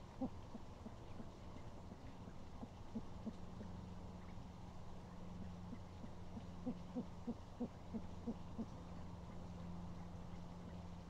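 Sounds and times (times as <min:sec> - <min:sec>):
low electrical hum: 0:00.0 - 0:11.0
owl hooting: 0:02.6 - 0:03.8, 0:05.7 - 0:08.7.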